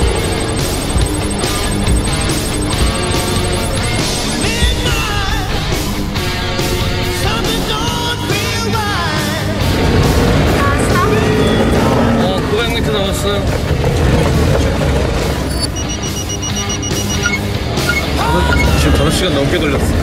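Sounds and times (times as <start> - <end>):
rapid electronic beeps: 0.0 - 6.1, 15.5 - 19.0
background music: 0.0 - 20.0
van driving rumble: 0.0 - 20.0.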